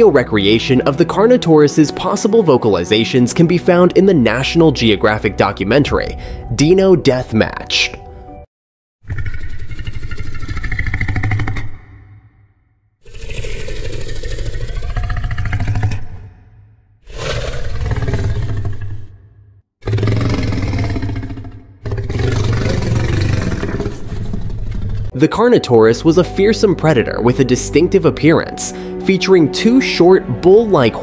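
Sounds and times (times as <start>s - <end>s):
deep rumbling creature calls: 9.0s - 12.4s, 13.0s - 25.1s.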